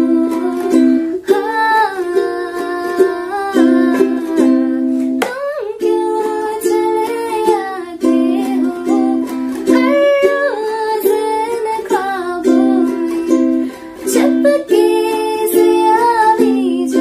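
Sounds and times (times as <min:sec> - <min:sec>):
strummed ukulele: 0:00.0 - 0:17.0
woman singing: 0:00.0 - 0:17.0.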